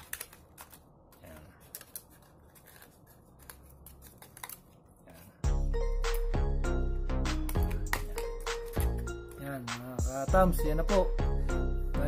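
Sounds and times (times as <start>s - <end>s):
scissors snipping plastic: 0.0s - 4.7s.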